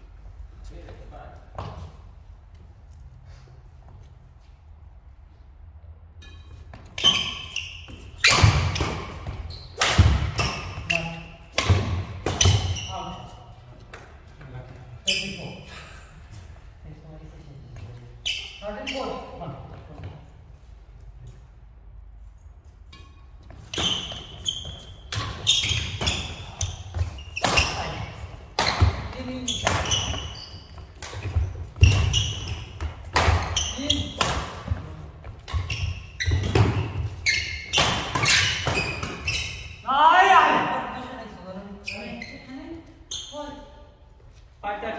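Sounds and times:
footfalls on court floor: 0:01.4 - 0:02.6, 0:23.4 - 0:39.5
racket striking shuttlecock: 0:08.2 - 0:10.8.

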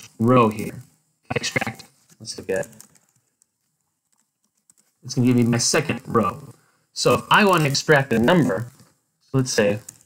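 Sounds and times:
faint keyboard clicks: 0:02.0 - 0:05.0, 0:09.6 - 0:10.0.

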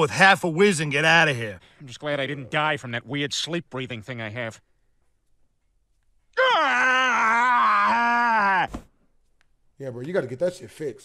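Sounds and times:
man groaning: 0:06.4 - 0:08.7.

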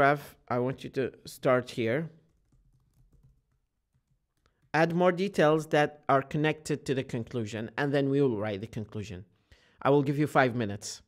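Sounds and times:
keyboard typing: 0:02.2 - 0:04.8.

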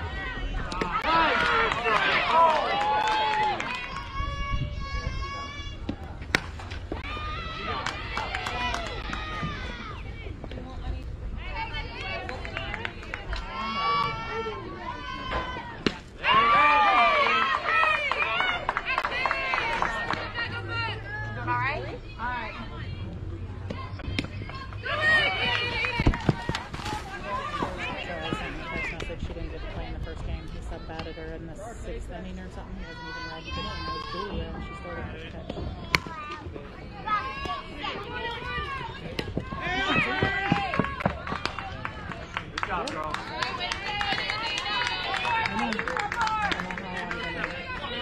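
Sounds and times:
players calling out and cheering: 0:00.0 - 0:48.0.

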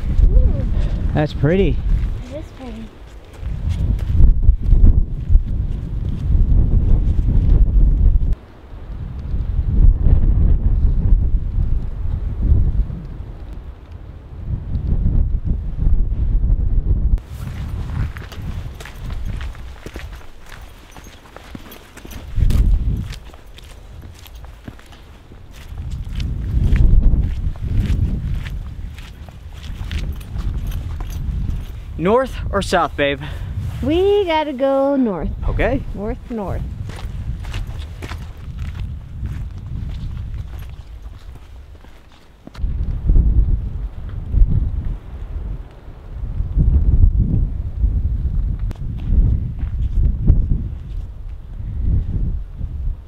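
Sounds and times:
wind buffeting microphone: 0:00.0 - 0:53.0
footsteps on icy trail: 0:01.8 - 0:07.6, 0:17.2 - 0:32.1, 0:35.8 - 0:42.9.

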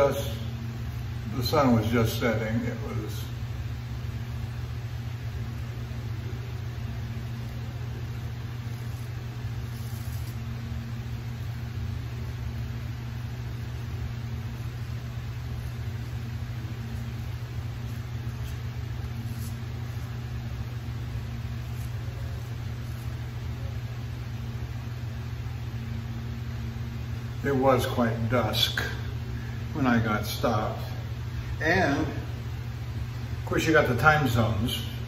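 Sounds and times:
low mechanical hum: 0:00.0 - 0:35.0.

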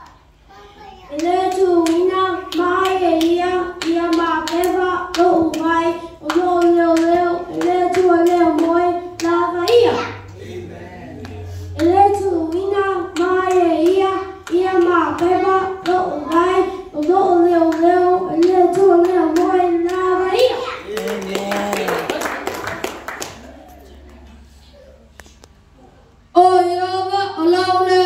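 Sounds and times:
boy reciting through microphone: 0:00.0 - 0:22.1, 0:25.8 - 0:28.0.

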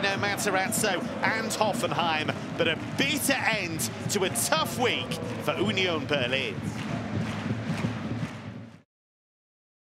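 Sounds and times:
stadium crowd noise: 0:00.0 - 0:08.8.

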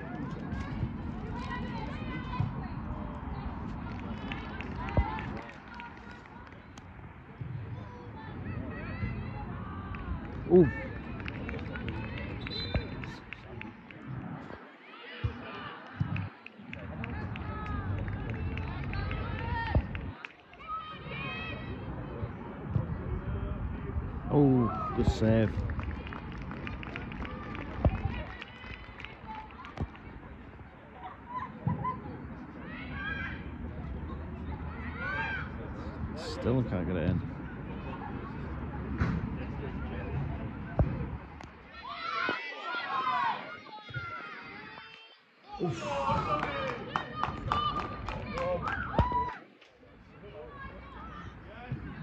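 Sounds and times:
ball thump: 0:40.7 - 0:41.5.

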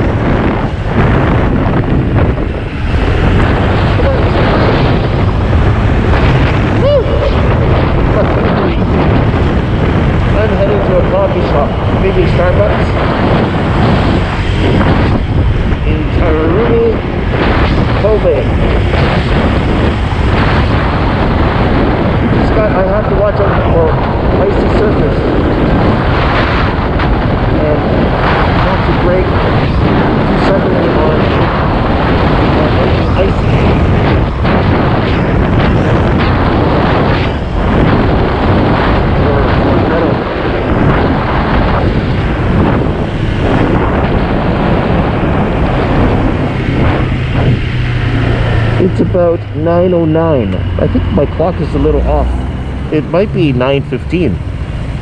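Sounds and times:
road noise: 0:00.0 - 0:55.0
wind rushing over microphone: 0:00.0 - 0:55.0
scooter engine: 0:54.4 - 0:55.0.

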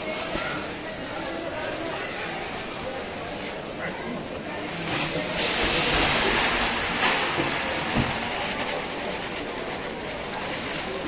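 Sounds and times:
rice pouring into a pot: 0:04.6 - 0:11.0.

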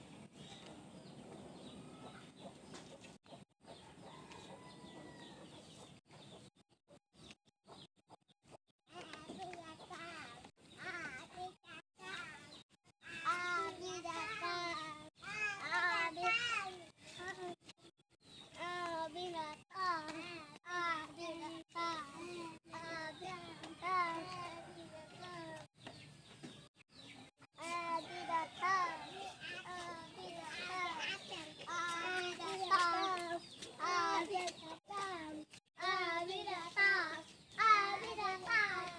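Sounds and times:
child's sing-song calls: 0:08.9 - 0:17.7, 0:18.3 - 0:25.7, 0:27.6 - 0:38.9.

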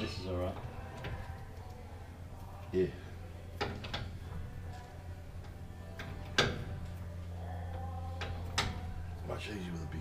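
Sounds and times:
steady low hum: 0:00.0 - 0:10.0
metallic clicks of breaker bar: 0:05.4 - 0:06.8, 0:08.2 - 0:09.0.

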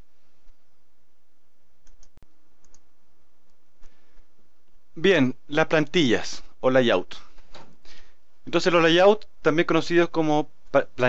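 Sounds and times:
microphone hiss: 0:00.0 - 0:11.0.

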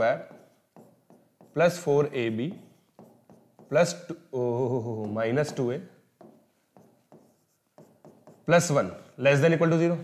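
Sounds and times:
marker scratching on whiteboard: 0:00.0 - 0:04.2, 0:04.9 - 0:09.1.

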